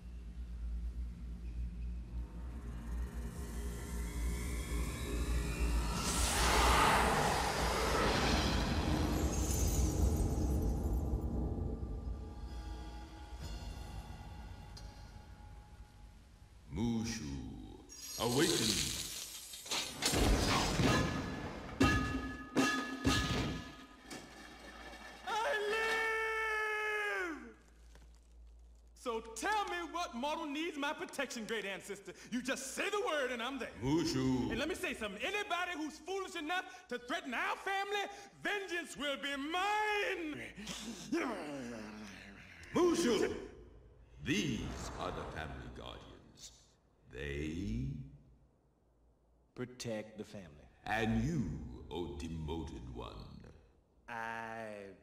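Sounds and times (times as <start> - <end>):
low rumble: 0.0 - 12.6
rising film music: 0.0 - 18.2
shimmering magic whoosh: 3.5 - 11.7.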